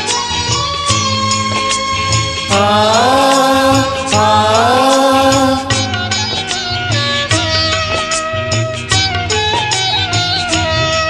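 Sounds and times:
devotional song backing music: 0:01.2 - 0:08.6
man singing a long note: 0:02.5 - 0:06.6.

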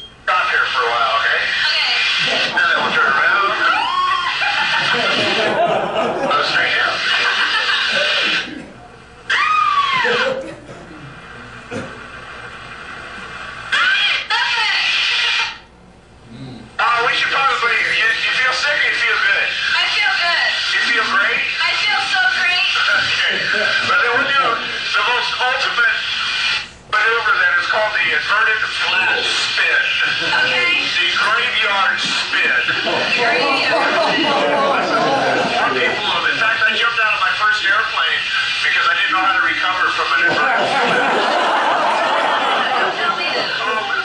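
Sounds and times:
voices talking and exclaiming: 0:00.3 - 0:08.6, 0:09.3 - 0:10.4, 0:27.0 - 0:44.0.

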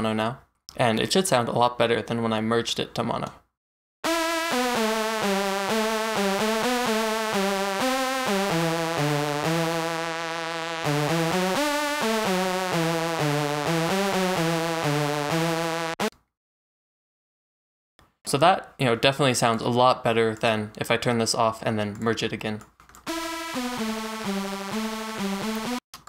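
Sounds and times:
synthesizer melody: 0:04.0 - 0:16.1, 0:23.1 - 0:25.8.

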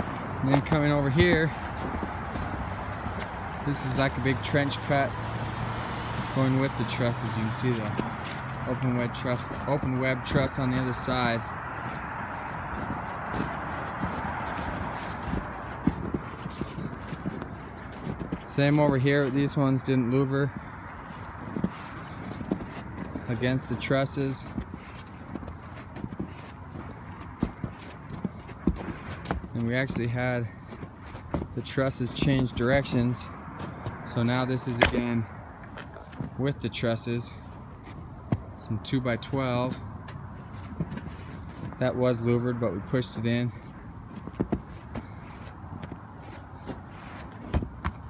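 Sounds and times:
footsteps crunching on snowy gravel: 0:00.0 - 0:48.0.

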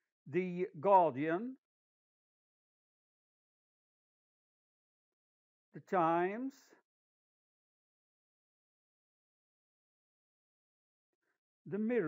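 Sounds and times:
person speaking: 0:00.3 - 0:01.5.

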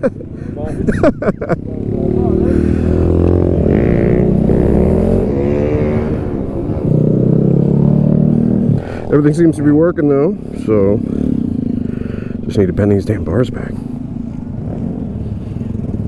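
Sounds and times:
motorcycle engine revving: 0:01.0 - 0:16.0.

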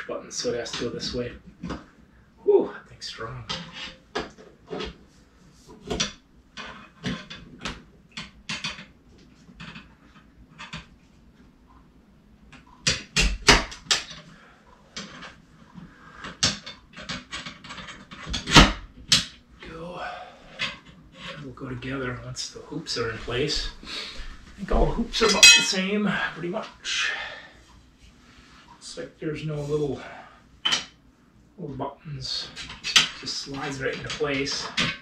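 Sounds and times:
metal tubes clicking and knocking: 0:25.2 - 0:25.9.

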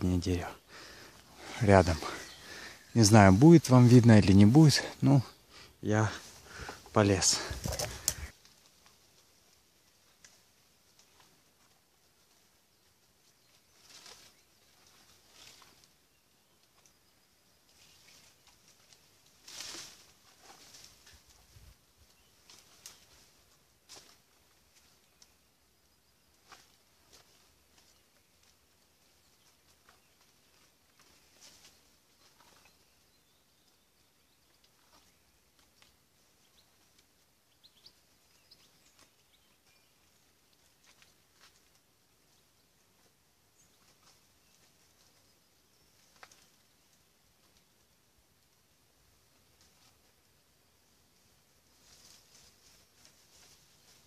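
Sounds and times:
faint bird chirps: 0:00.0 - 0:08.3, 0:12.2 - 0:19.0, 0:24.6 - 0:41.4
branches and leaves rustling: 0:00.0 - 0:54.0.

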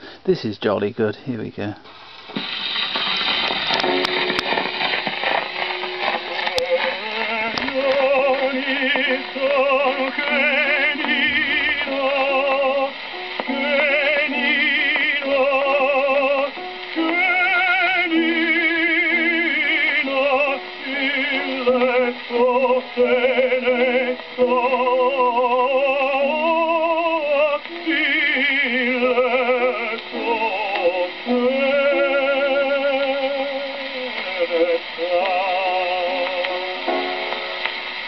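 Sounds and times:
record hiss and crackle: 0:00.0 - 0:38.0
gramophone needle surface noise: 0:00.3 - 0:38.0
operatic tenor singing: 0:06.3 - 0:36.9.

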